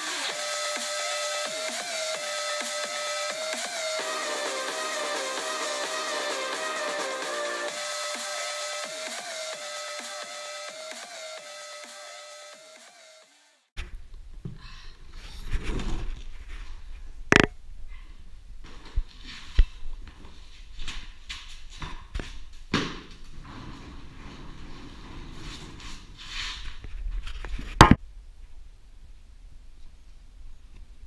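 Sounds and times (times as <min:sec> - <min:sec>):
music: 0:00.0 - 0:13.7
scuffling and footsteps: 0:18.6 - 0:27.8.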